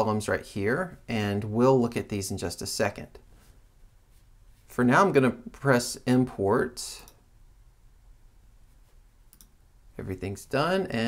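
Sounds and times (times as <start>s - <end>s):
low steady room hum: 0.0s - 11.0s
faint computer mouse clicks: 9.3s - 9.6s.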